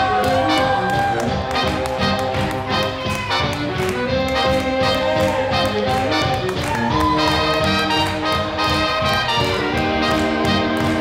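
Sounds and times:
fast swing jazz band: 0:00.2 - 0:11.0.

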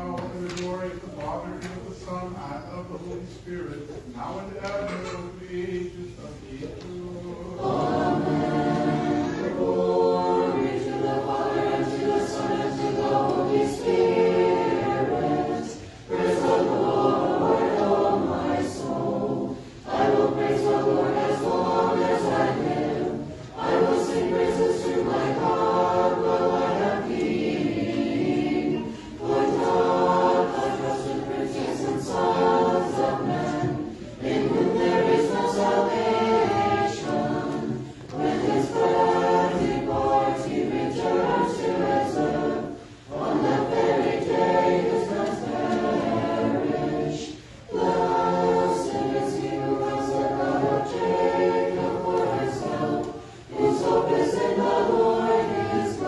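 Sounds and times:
choir chanting a cappella: 0:00.0 - 0:56.0.

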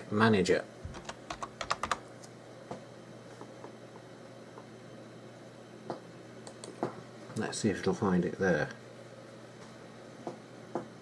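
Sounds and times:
computer keyboard typing: 0:00.9 - 0:02.0.

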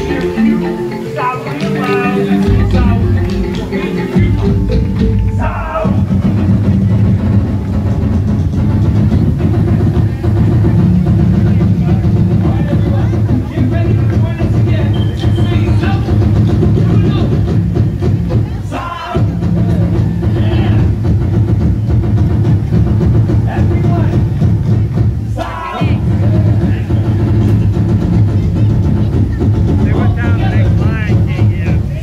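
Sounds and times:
drum band playing: 0:00.0 - 0:32.0
voices calling out: 0:00.0 - 0:32.0.

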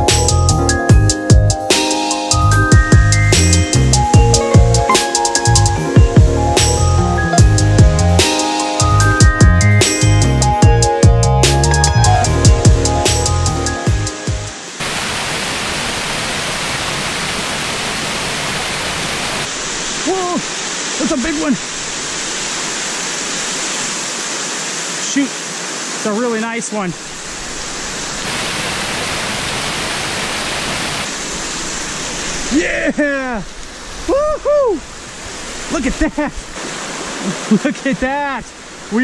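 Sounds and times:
music: 0:00.0 - 0:14.7
water rushing over rocks: 0:14.2 - 0:39.0.

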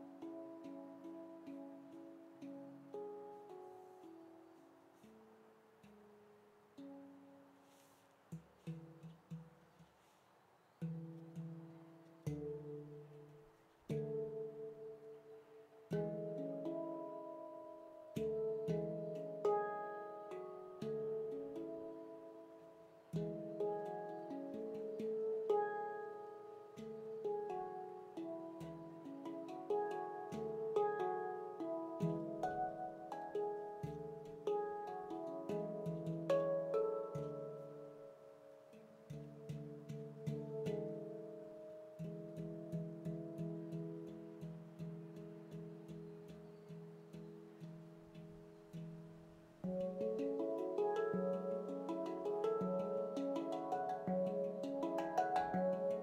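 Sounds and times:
handpan notes played by hand: 0:00.0 - 0:10.1, 0:10.8 - 0:56.0.

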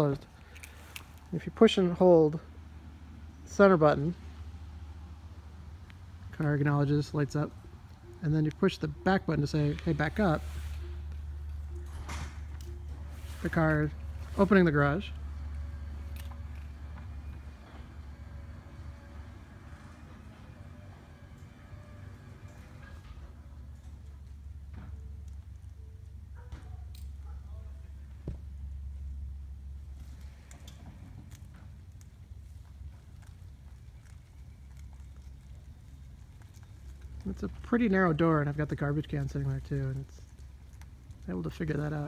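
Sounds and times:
garage door opener humming: 0:00.0 - 0:27.3
car rolling slowly: 0:00.0 - 0:42.0.

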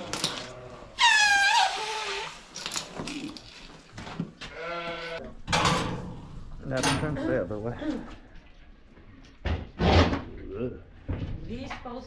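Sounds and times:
lamb bleating: 0:04.5 - 0:05.2.

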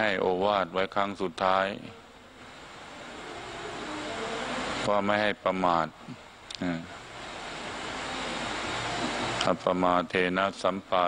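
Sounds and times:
faint low hum: 0:00.0 - 0:11.0
rushing mechanical noise: 0:00.0 - 0:11.0.

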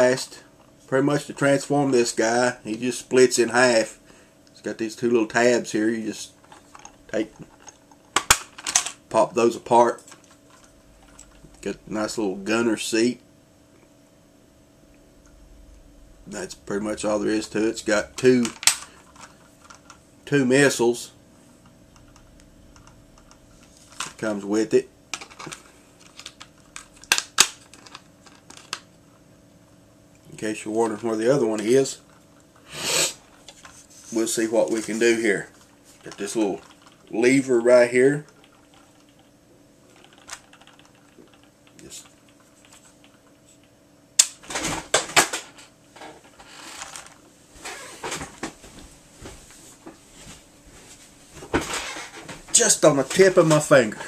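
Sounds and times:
plastic clattering and rustling: 0:51.4 - 0:52.6.

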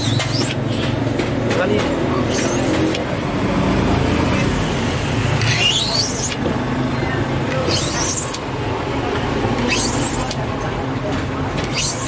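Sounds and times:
blade scraping acrylic sheet: 0:00.0 - 0:01.1, 0:02.1 - 0:03.1, 0:05.4 - 0:06.5, 0:07.5 - 0:08.5, 0:09.5 - 0:10.5, 0:11.5 - 0:12.0.

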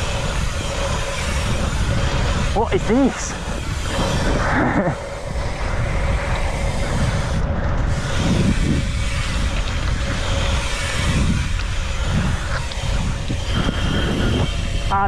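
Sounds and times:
bike tyre noise: 0:00.0 - 0:15.0
wind rushing over microphone: 0:00.0 - 0:15.0.

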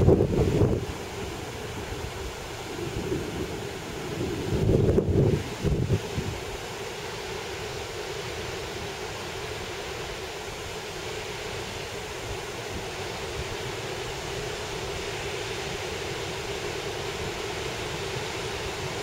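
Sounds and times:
surf washing on beach: 0:00.0 - 0:19.0.

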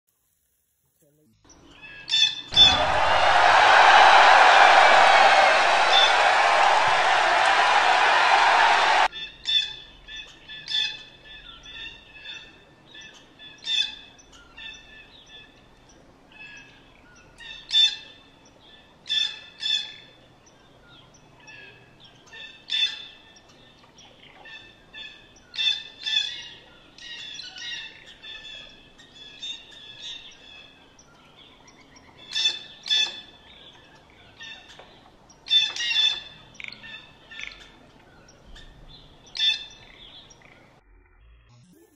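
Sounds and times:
birds chirping and calling: 0:09.1 - 0:40.8.

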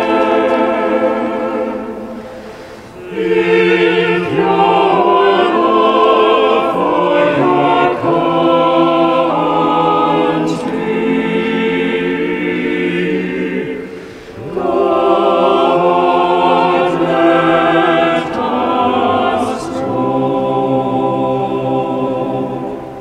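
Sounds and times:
choir singing a hymn: 0:00.0 - 0:23.0.

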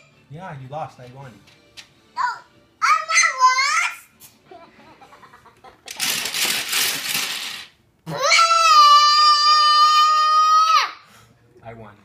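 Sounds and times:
toddler shouting: 0:02.2 - 0:04.1, 0:08.1 - 0:11.0.

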